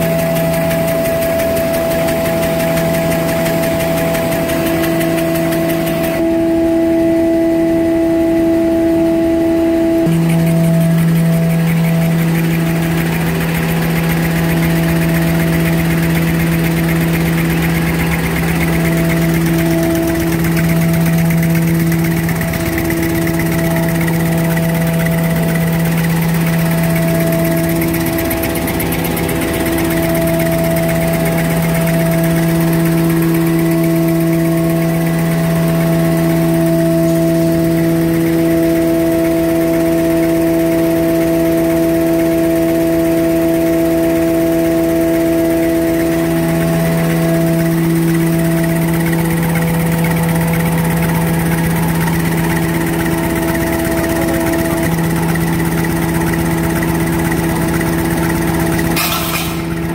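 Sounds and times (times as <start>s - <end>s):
machine humming: 0.0s - 59.9s.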